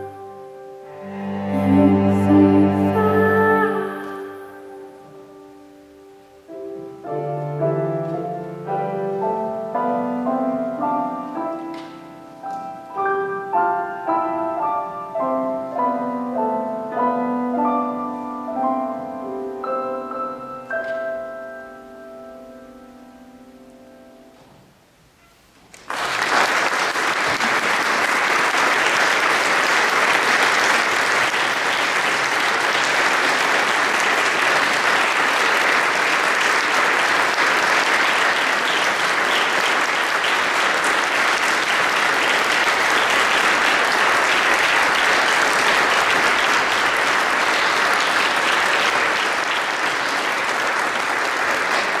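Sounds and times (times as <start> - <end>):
music: 0.0 - 25.6
audience applauding: 0.9 - 4.3, 25.7 - 52.0.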